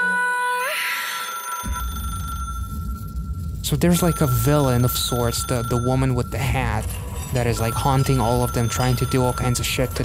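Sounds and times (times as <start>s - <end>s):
old telephone ringing: 1.1s - 10.0s
low rumble: 1.7s - 10.0s.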